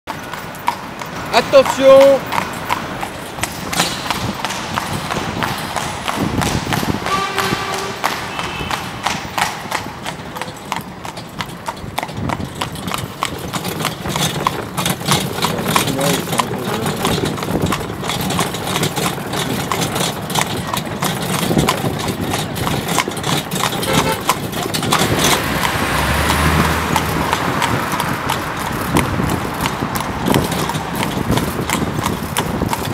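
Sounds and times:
hooves clip-clopping on paving: 0:00.1 - 0:32.9.

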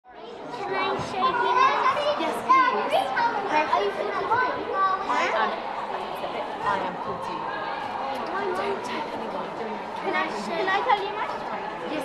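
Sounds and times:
young children talking: 0:00.1 - 0:12.0.

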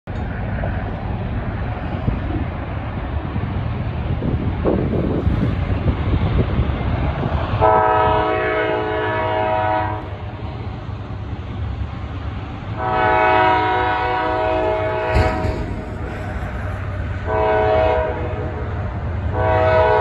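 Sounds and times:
freight train rumble: 0:00.0 - 0:20.0
locomotive air horn: 0:07.6 - 0:10.1, 0:12.8 - 0:16.2, 0:17.2 - 0:20.0.

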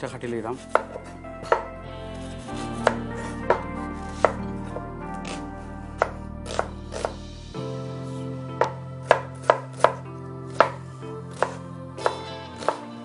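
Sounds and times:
knife chopping on wooden board: 0:00.6 - 0:01.7, 0:02.8 - 0:04.4, 0:05.2 - 0:05.4, 0:06.0 - 0:07.2, 0:08.6 - 0:12.8.

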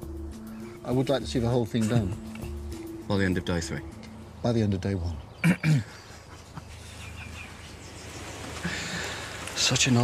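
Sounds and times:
faint bird chirps: 0:03.9 - 0:09.3.

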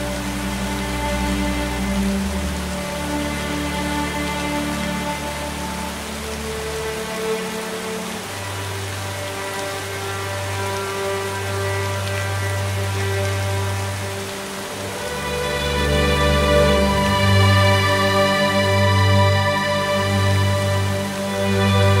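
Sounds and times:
slow ambient music: 0:00.0 - 0:22.0
waterfall splashing into pond: 0:00.0 - 0:22.0.

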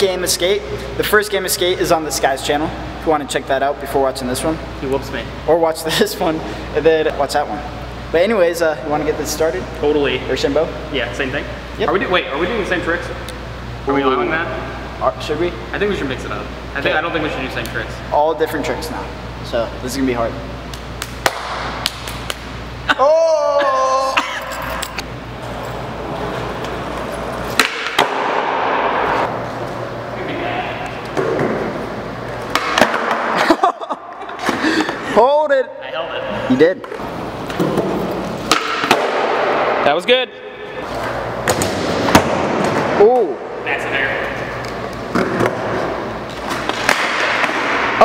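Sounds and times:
steady low hum: 0:00.0 - 0:48.0
skateboard wheels rolling on concrete: 0:25.4 - 0:29.8.

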